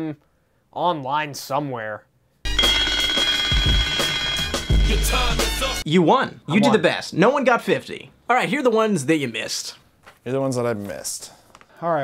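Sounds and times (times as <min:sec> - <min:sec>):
twin-bell alarm clock ringing: 0:02.5 - 0:05.2
music: 0:02.5 - 0:05.9.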